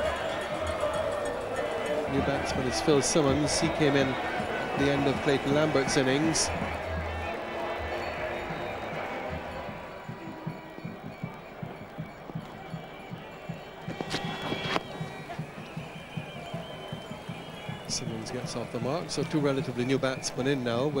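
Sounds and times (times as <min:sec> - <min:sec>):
crowd music playing: 0:00.0 - 0:21.0.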